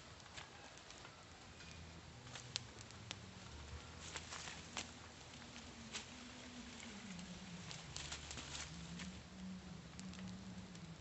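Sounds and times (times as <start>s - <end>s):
faint low hum: 0.0s - 11.0s
fire crackling: 0.0s - 11.0s.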